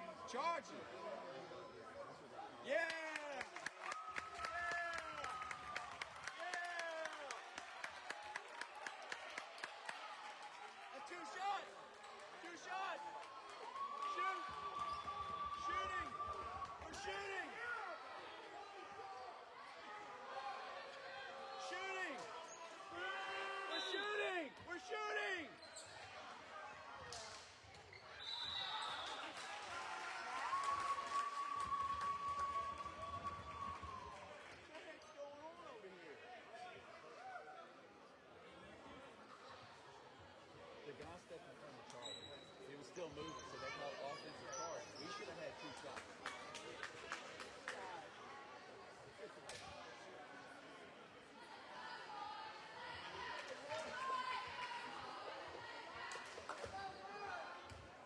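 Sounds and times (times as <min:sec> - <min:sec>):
voices in a gym: 0:00.0 - 0:58.0
sneakers squeaking on floor: 0:42.0 - 0:42.6.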